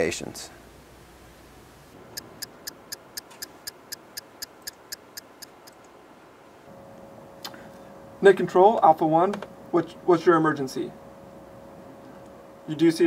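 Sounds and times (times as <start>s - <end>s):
faint sharp ticks: 2.2s - 5.9s.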